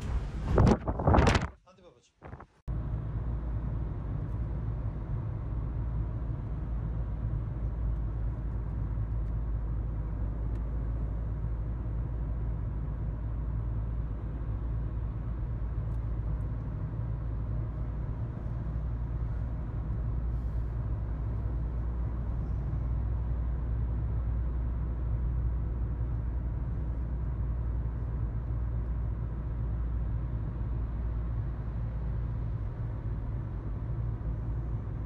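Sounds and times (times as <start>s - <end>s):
car road and engine rumble: 0.0s - 35.0s.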